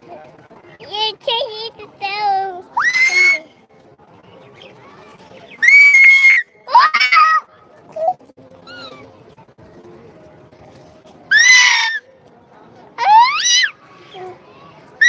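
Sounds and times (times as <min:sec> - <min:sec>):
child screaming: 0:02.8 - 0:03.5.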